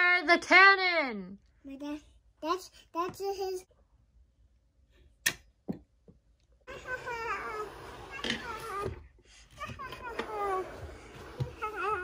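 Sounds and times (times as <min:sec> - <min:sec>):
child babbling: 0:06.7 - 0:08.9, 0:11.5 - 0:12.0.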